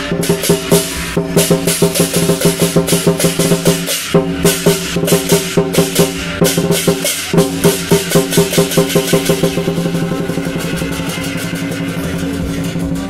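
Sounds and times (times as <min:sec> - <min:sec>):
big drum beating: 0:00.0 - 0:13.0
cymbals clashing: 0:00.0 - 0:13.0.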